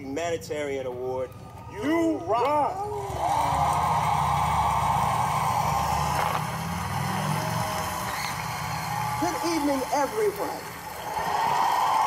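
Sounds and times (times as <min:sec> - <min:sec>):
audience applauding and cheering: 0:01.2 - 0:12.0.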